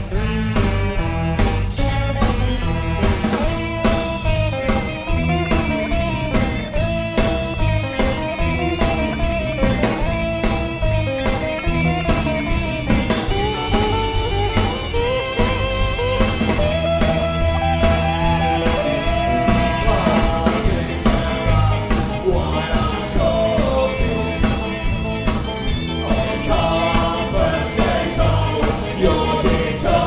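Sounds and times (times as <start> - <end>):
drum kit beat: 0.0 - 30.0
electric guitar: 0.0 - 30.0
ska band playing: 0.0 - 30.0.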